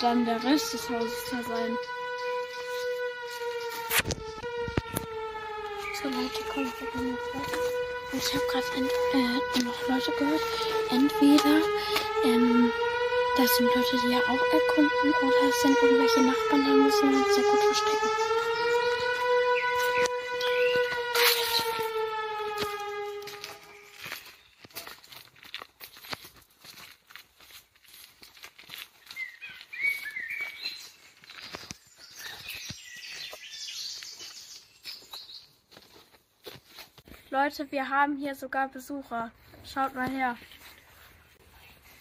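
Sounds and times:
siren-like wail: 0.0s - 25.0s.

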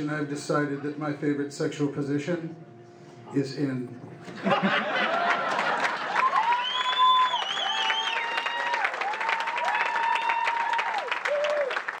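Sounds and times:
audience cheering: 5.0s - 12.0s
audience clapping: 5.0s - 12.0s
long whoops: 6.2s - 12.0s.

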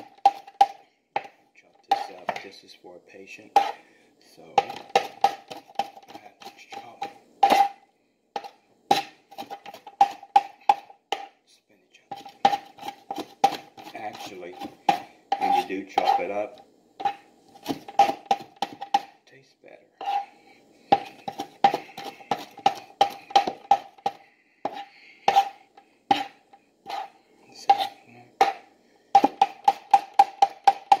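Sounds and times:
knife chopping on cutting board: 4.6s - 7.7s, 8.4s - 11.3s, 12.1s - 16.3s, 17.0s - 19.1s, 20.9s - 31.0s.

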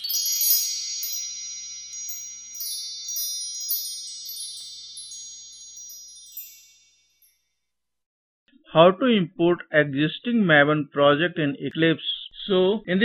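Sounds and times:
bell-like chime tones: 0.0s - 7.7s.

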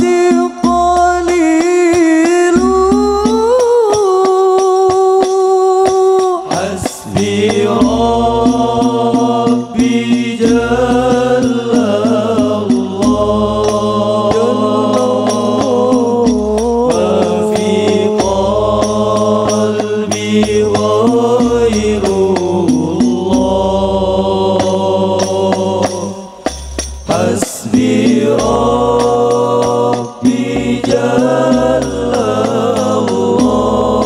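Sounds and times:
male group singing in unison: 0.0s - 5.0s, 6.1s - 34.0s
frame drums striking: 0.0s - 34.0s.

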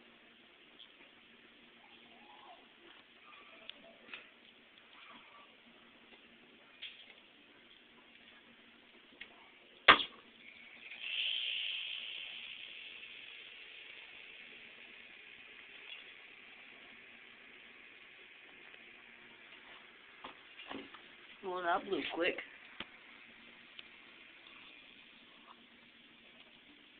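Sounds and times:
capacitor popping: 8.9s - 26.9s
hiss of venting capacitor: 9.9s - 26.9s.

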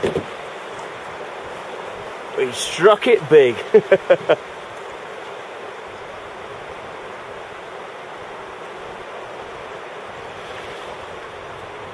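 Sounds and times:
river water rushing around rocks: 0.0s - 11.9s.

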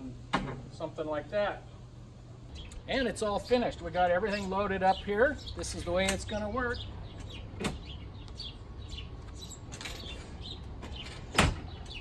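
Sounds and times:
birds chirping faintly: 1.7s - 12.0s.

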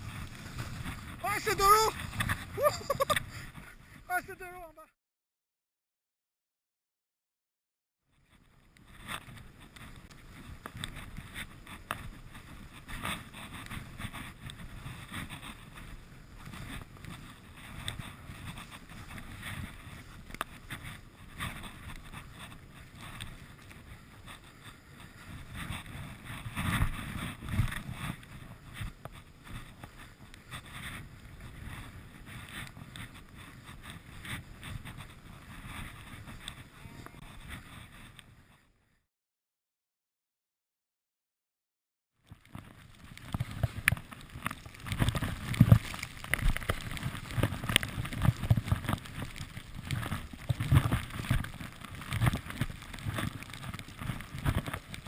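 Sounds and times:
wind rushing over microphone: 0.0s - 4.1s
skis scraping through wet snow: 0.0s - 4.7s, 8.2s - 38.6s, 42.2s - 55.0s.

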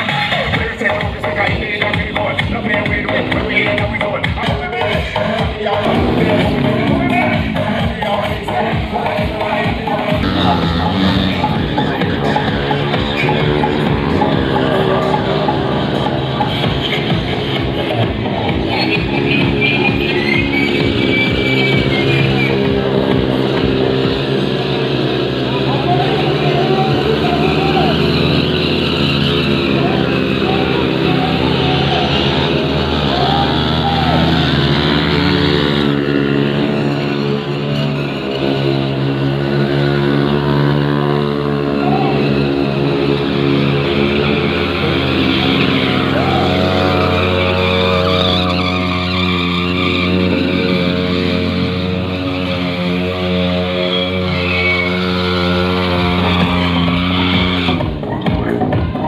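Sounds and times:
loud music: 0.0s - 59.0s
motorcycle engines revving: 0.0s - 59.0s.

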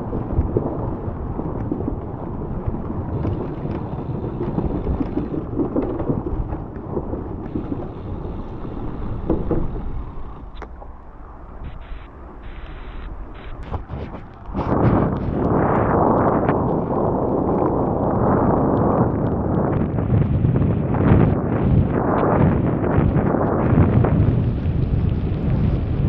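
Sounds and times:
rumbling wind noise on microphone: 0.0s - 26.0s.

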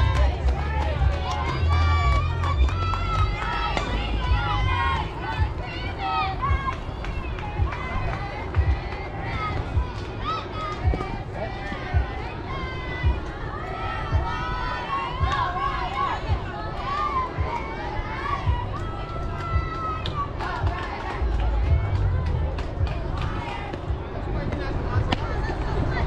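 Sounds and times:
low rumble: 0.0s - 17.6s, 18.2s - 26.0s
girls shouting and calling out: 1.0s - 11.3s, 11.9s - 20.7s.

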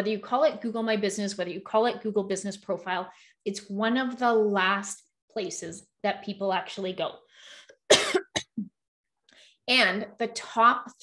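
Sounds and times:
woman coughing: 7.9s - 8.7s.

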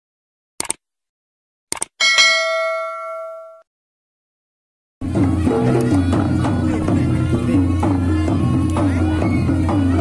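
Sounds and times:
bell ringing: 2.0s - 3.6s.

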